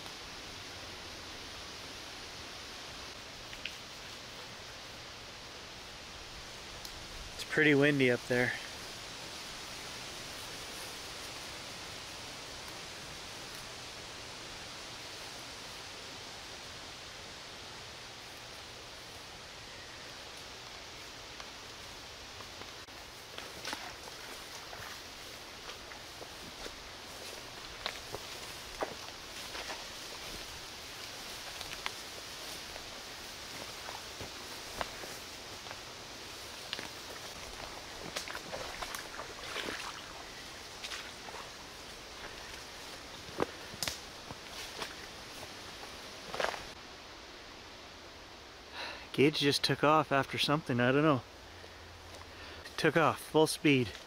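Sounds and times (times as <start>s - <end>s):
wind in treetops: 0.0s - 49.0s
footsteps through undergrowth: 8.3s - 12.7s, 20.5s - 46.8s
twigs snapping underfoot: 25.6s - 32.0s, 36.7s - 40.2s, 43.3s - 45.2s.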